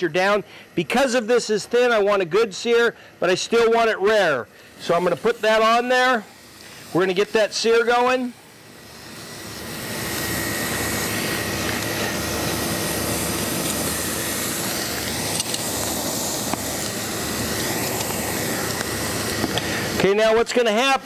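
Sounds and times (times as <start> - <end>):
steak sizzling on a grill: 3.3 - 20.4.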